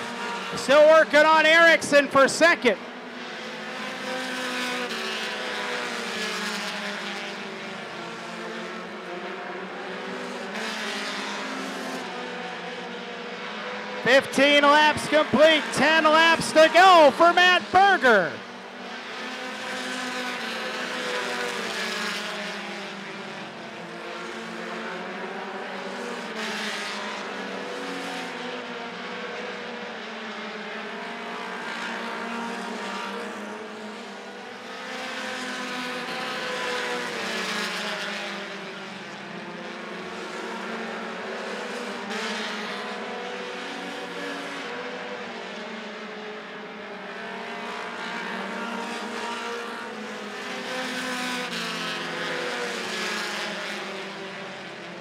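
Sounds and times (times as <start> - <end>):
race car engines: 0.0 - 55.0.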